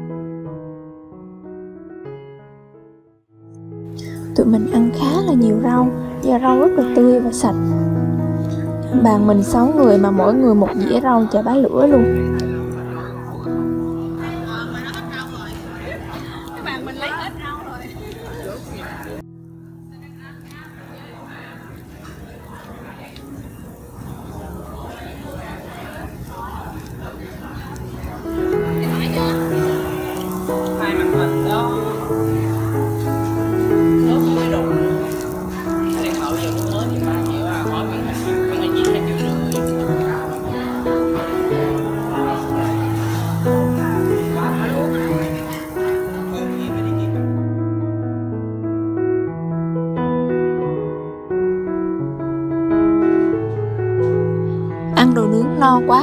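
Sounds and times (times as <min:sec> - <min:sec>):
seafood sizzling on grill: 0:03.9 - 0:47.4, 0:55.0 - 0:56.0
restaurant chatter: 0:03.9 - 0:47.5.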